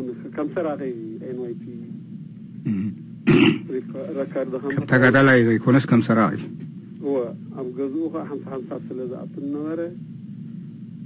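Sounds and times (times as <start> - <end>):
man clearing his throat: 2.6 - 3.8.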